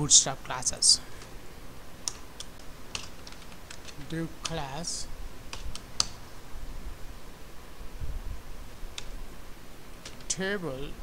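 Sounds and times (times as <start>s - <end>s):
keyboard keystrokes: 2.0s - 4.7s.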